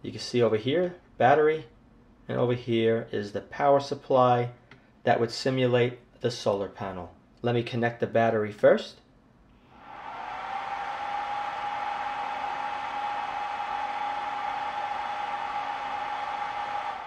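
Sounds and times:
cooling fan whine: 9.8 - 17.0.

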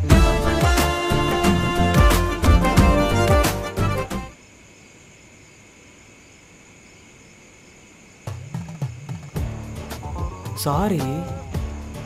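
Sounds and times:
crickets trilling: 4.3 - 12.0.

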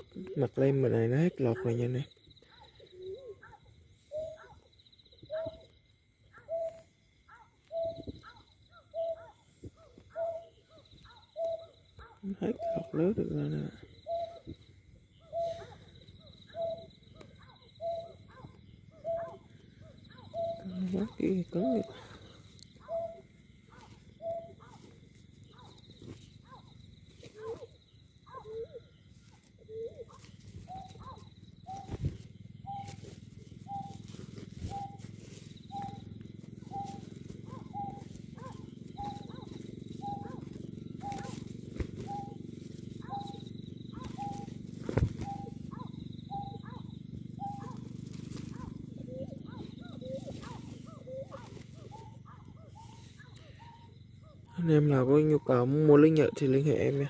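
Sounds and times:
repeated recorded bird call: 0.0 - 57.0.

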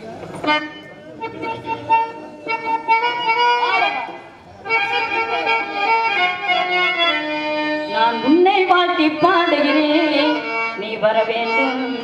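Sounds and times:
harmonium chord: 0.0 - 12.0.

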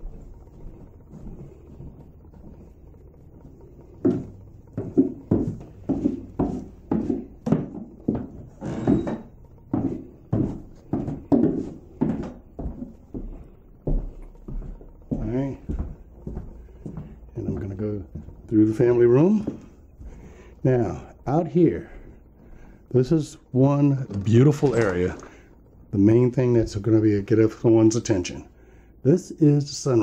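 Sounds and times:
footsteps going down stairs: 0.0 - 28.6.

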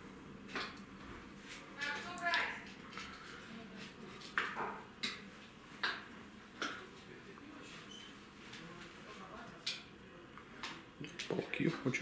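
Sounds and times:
faint indistinct voices: 1.7 - 12.0.

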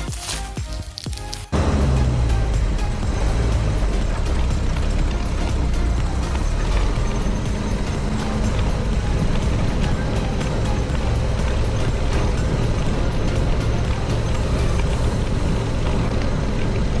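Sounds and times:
music with steady beat: 0.0 - 15.6
tyres rolling on dirt: 0.0 - 17.0
car engine running: 1.4 - 17.0.

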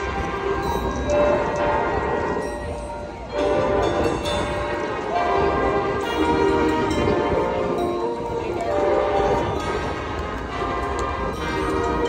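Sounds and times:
marching band brass chords: 0.0 - 12.0
stadium crowd noise: 0.0 - 12.0.

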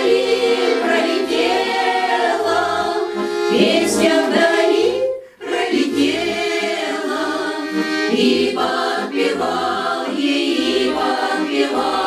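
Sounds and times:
accordion: 0.0 - 12.0
women's choir singing: 0.0 - 12.0.

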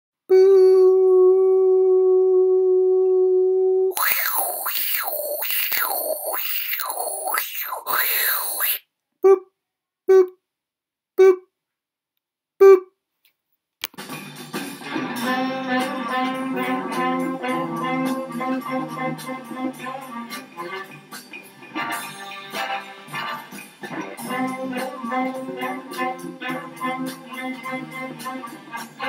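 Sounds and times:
hissy wobbling sweep: 3.9 - 8.8.

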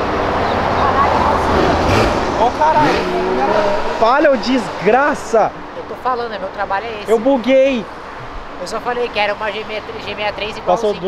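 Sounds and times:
car passing: 0.0 - 11.0
people's voices: 0.1 - 11.0.

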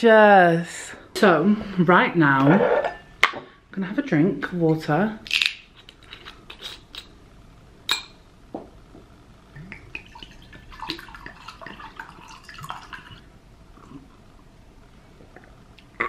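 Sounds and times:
water pouring into glass: 9.8 - 13.3.

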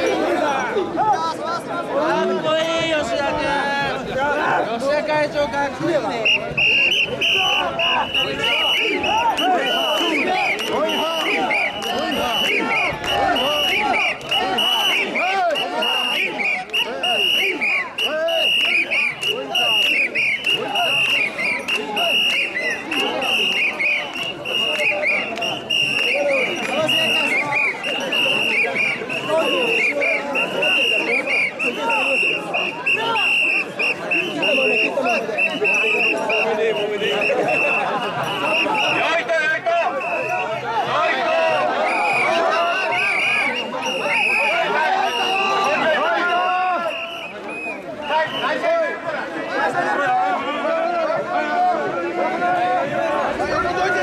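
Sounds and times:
crowd chanting and shouting: 0.0 - 54.0
shrill whistle blasts: 6.2 - 39.1, 39.8 - 40.6, 41.3 - 45.8, 46.7 - 48.6.

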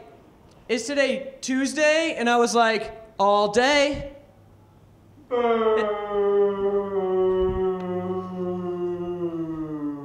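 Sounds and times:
person booing: 5.3 - 10.0.

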